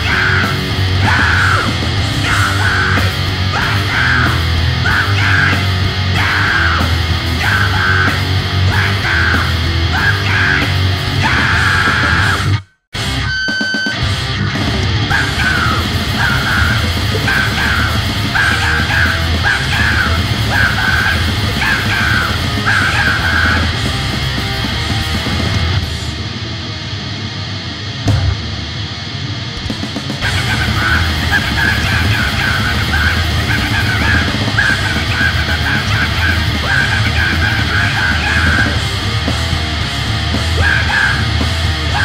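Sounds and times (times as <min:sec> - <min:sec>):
harsh shouted vocals: 0:00.0 - 0:12.7, 0:14.2 - 0:26.2, 0:30.0 - 0:42.0
distorted punk guitars and drums: 0:00.0 - 0:42.0.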